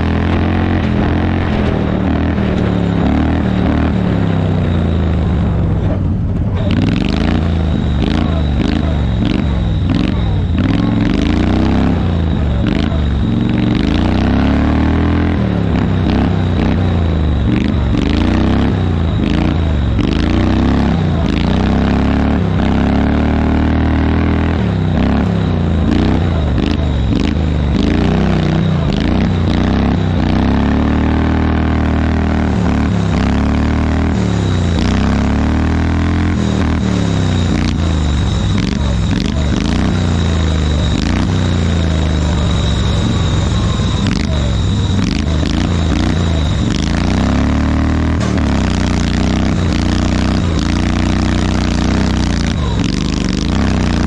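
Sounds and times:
small tractor engine running: 0:00.0 - 0:54.0.

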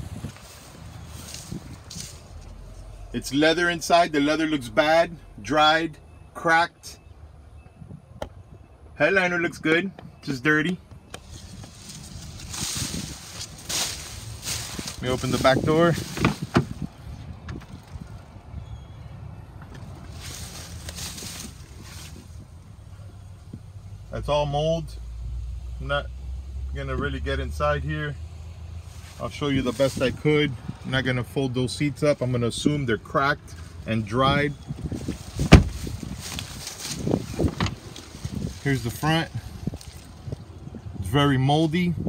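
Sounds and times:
footsteps rustling through grass: 0:00.0 - 0:02.8, 0:11.2 - 0:16.8, 0:20.0 - 0:22.5, 0:34.8 - 0:40.4
wind rumble on microphone: 0:00.0 - 0:02.9, 0:07.6 - 0:08.7, 0:10.9 - 0:24.0, 0:29.3 - 0:31.2, 0:33.5 - 0:42.0
car door unlatching clicks: 0:35.4 - 0:35.8.

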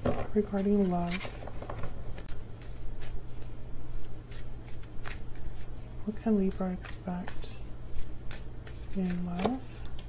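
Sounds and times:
cards being shuffled: 0:00.0 - 0:10.0
low steady hum: 0:00.0 - 0:10.0.

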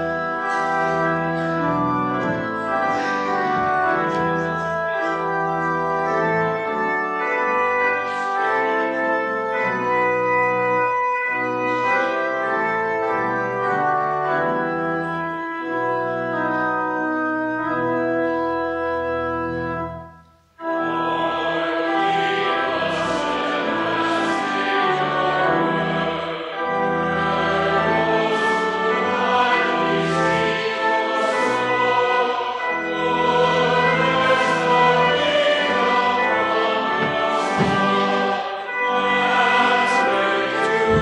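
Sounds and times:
organ playing hymn chords: 0:00.0 - 0:41.0.

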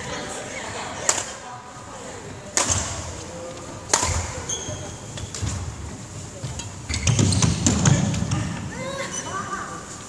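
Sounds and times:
racket striking shuttlecock: 0:01.1 - 0:01.3, 0:02.5 - 0:03.0, 0:03.9 - 0:04.4
shoe squeak: 0:04.3 - 0:05.3, 0:06.9 - 0:07.9, 0:09.0 - 0:09.6
footfalls on wooden court: 0:05.3 - 0:08.6.

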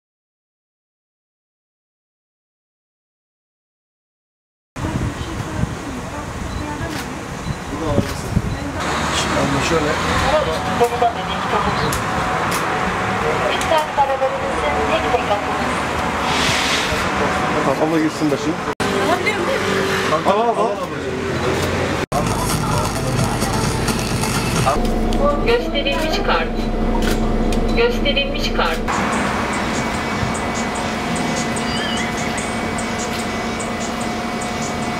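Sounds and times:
people talking: 0:04.8 - 0:12.1, 0:13.2 - 0:15.9, 0:17.1 - 0:28.9
road traffic noise: 0:04.8 - 0:34.9
air conditioning hum: 0:22.2 - 0:34.9
bus engine idling: 0:22.2 - 0:34.9.

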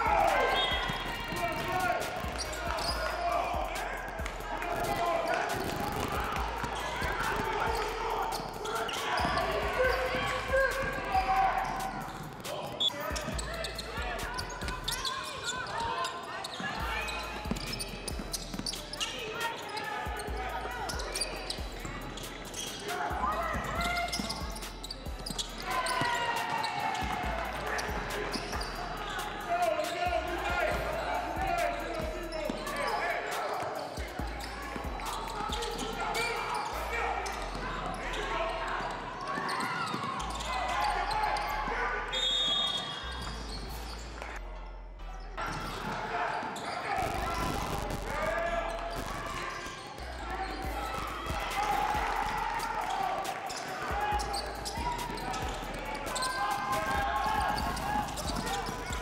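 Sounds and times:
people calling out: 0:00.0 - 0:43.6, 0:45.5 - 0:59.0.

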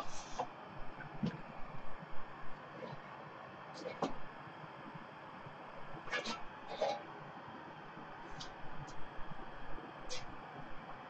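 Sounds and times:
sheet-metal cover scraping: 0:06.1 - 0:07.0.

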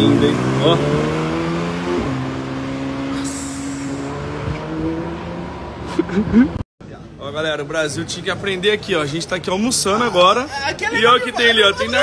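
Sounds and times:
car engine passing by: 0:00.0 - 0:06.4.

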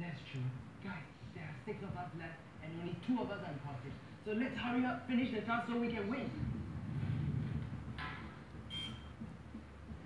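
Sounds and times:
short high electronic beep: 0:08.7 - 0:09.1.

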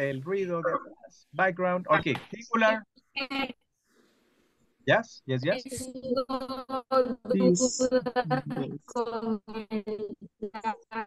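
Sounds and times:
choppy voice over video call: 0:00.0 - 0:03.5, 0:04.9 - 0:11.0.

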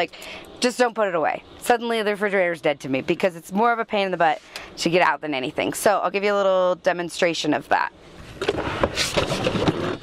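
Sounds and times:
wooden drawer scraping: 0:08.4 - 0:10.0.

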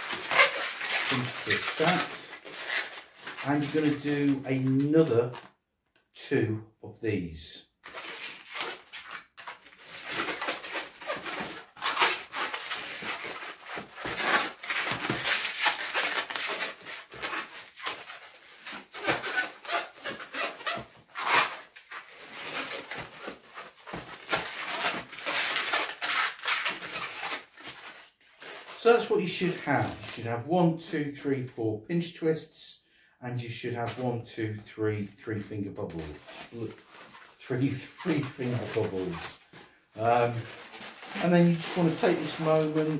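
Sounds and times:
balloon squeaking and rubbing: 0:00.0 - 0:05.6, 0:07.8 - 0:30.3, 0:35.3 - 0:42.9.

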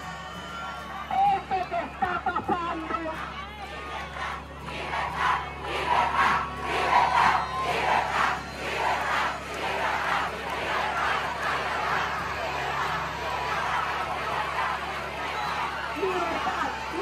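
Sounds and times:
large crowd shouting: 0:00.0 - 0:17.0.

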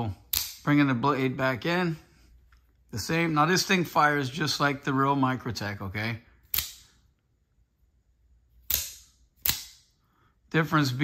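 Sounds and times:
spring knife blade snapping: 0:08.6 - 0:09.8.

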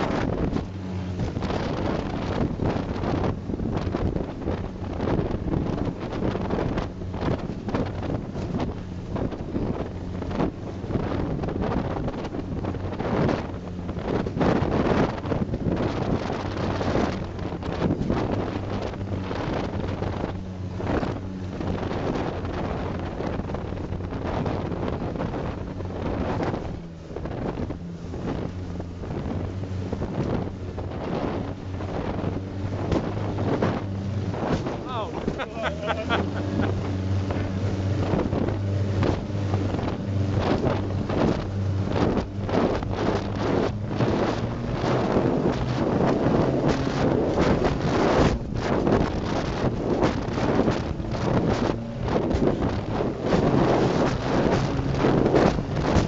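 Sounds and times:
hull slapping and spraying: 0:00.0 - 0:56.0
speedboat engine droning: 0:00.0 - 0:56.0
wind on microphone: 0:00.0 - 0:56.0.

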